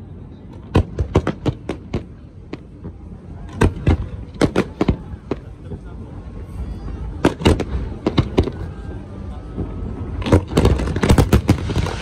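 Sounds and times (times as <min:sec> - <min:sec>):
fireworks bangs: 0:00.5 - 0:06.1, 0:07.0 - 0:12.0.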